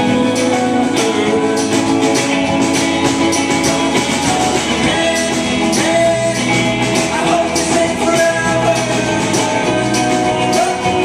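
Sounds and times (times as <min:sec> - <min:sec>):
bass guitar: 0:00.0 - 0:11.0
drum kit with cymbals: 0:00.0 - 0:11.0
electric guitar: 0:00.0 - 0:11.0.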